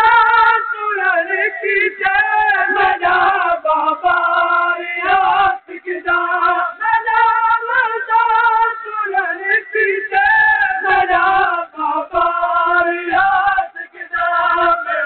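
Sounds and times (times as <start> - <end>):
unaccompanied mourning lament singing: 0.0 - 15.0.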